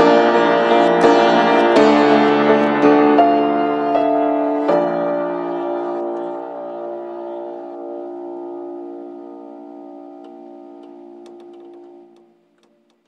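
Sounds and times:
piano chord held: 0:00.0 - 0:12.8.

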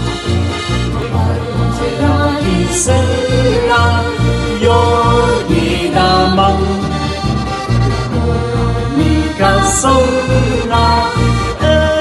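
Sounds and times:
button accordion melody: 0:00.0 - 0:12.0
double bass notes: 0:00.0 - 0:12.0.

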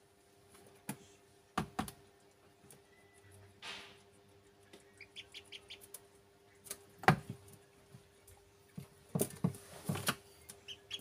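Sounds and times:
beaks pecking on floor: 0:01.8 - 0:11.0
ducklings peeping: 0:02.8 - 0:09.0, 0:10.0 - 0:11.0.

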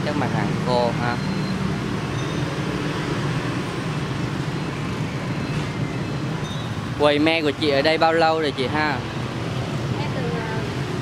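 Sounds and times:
motorbike traffic hum: 0:00.0 - 0:11.0.

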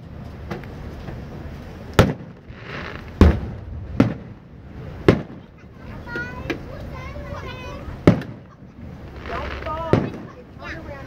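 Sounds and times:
fireworks booming with echo: 0:02.0 - 0:06.7, 0:07.9 - 0:10.6.

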